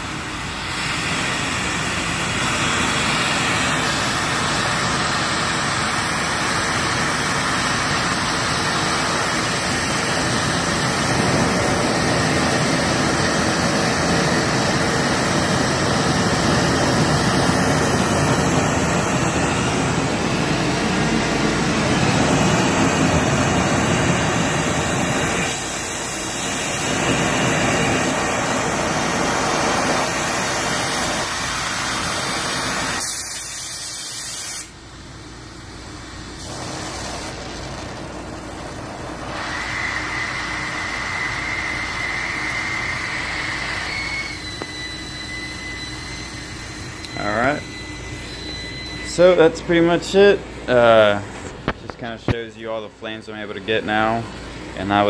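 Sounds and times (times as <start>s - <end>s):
torch flame hissing: 0.1s - 34.8s, 36.3s - 44.4s.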